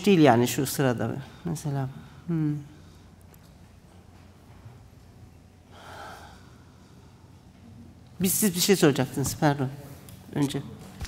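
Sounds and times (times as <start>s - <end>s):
faint room hum: 0.0s - 11.0s
person exhaling: 5.7s - 7.2s.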